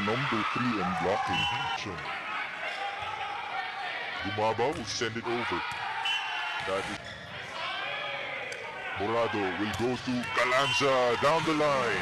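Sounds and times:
players calling: 0.0 - 12.0.

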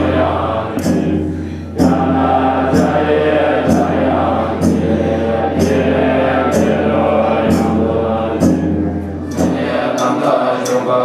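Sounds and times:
voices chanting in unison: 0.0 - 11.0.

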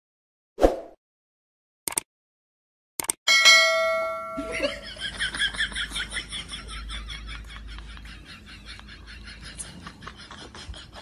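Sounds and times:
bright bell ding: 3.3 - 4.9.

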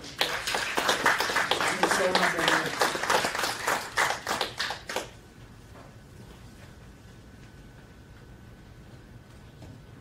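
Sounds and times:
scattered applause: 0.0 - 5.2.

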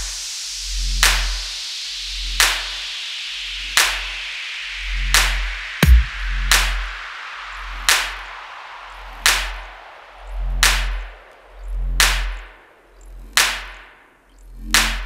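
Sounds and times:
deep sub-bass: 0.7 - 1.5, 4.8 - 15.0
sharp crack with long tail: 7.8 - 14.1.

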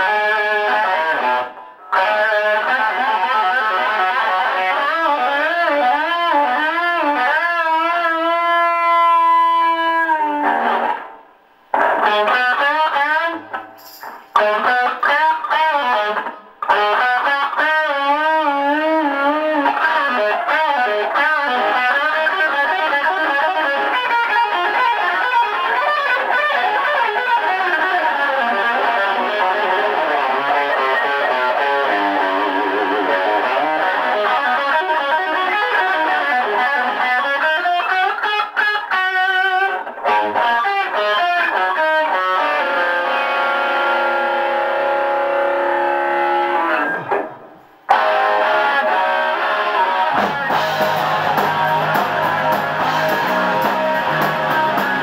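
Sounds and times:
distorted electric guitar lead: 0.0 - 55.0.

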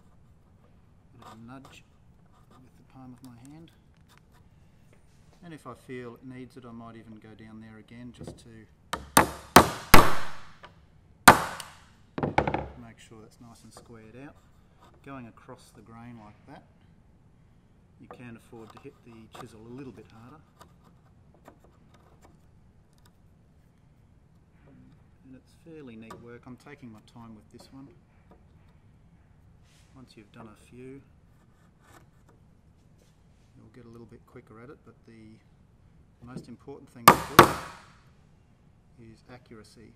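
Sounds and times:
chisel scraping wood: 0.0 - 5.1, 13.7 - 15.2, 18.1 - 23.3, 31.3 - 32.5
chisel tapping and clicking: 8.2 - 12.8, 37.1 - 37.8
chisel struck into wood: 9.0 - 10.7, 11.3 - 12.8, 37.1 - 37.9.

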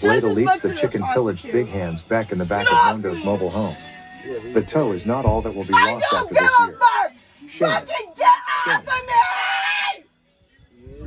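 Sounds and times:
harsh scream: 5.8 - 10.1.

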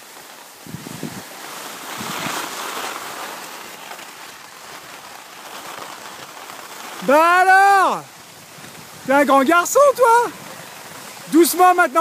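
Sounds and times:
skis sliding on snow: 0.0 - 12.0
wind on microphone: 0.5 - 2.6.

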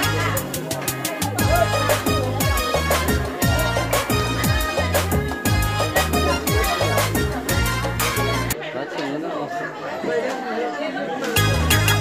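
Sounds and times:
dance music with steady beat: 0.0 - 8.6
people chattering: 0.0 - 12.0.

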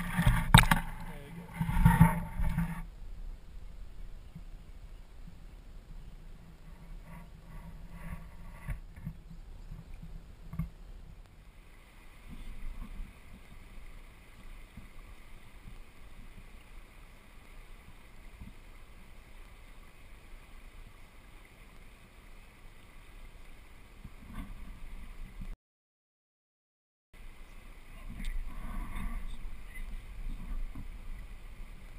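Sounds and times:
water washing against hull: 0.0 - 2.9, 6.6 - 25.5, 27.2 - 31.9
hiss of water: 11.4 - 25.4.

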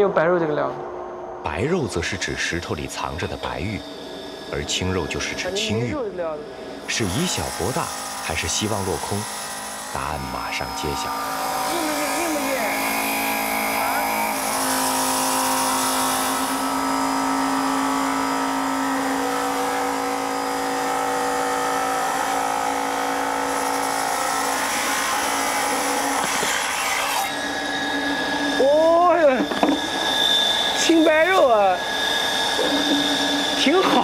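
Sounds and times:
saw blade grinding stone: 1.7 - 6.1, 6.8 - 34.0.

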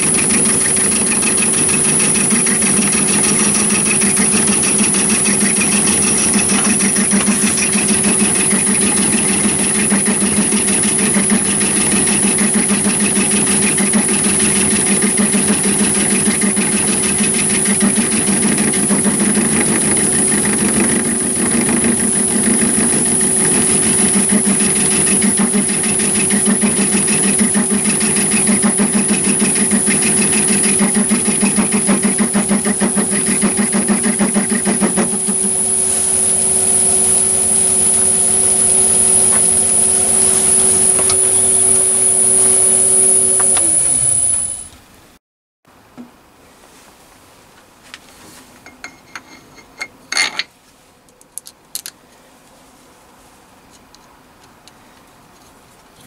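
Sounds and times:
lathe turning metal: 0.0 - 44.8
high-pitched machine whine: 0.0 - 44.9.

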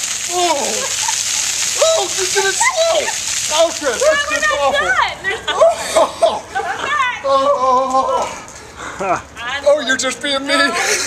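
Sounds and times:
water pouring and splashing: 0.0 - 11.0
people crying out: 0.3 - 1.0, 1.8 - 3.3, 4.1 - 9.2.

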